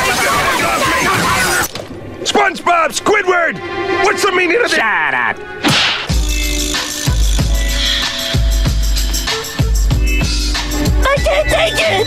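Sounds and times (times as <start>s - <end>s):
cartoon crashing and smashing: 5.6s - 6.2s.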